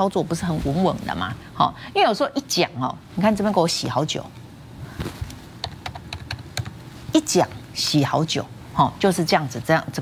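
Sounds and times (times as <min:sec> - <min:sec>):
keyboard typing: 0:05.6 - 0:06.8.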